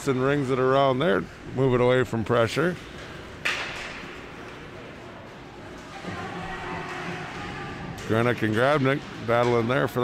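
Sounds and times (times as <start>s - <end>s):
arena noise: 0.0s - 10.0s.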